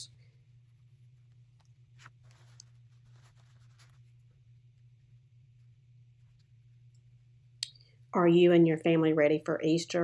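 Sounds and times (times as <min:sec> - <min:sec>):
low steady hum: 0:00.0 - 0:10.0
paper towel rustling: 0:02.0 - 0:04.2.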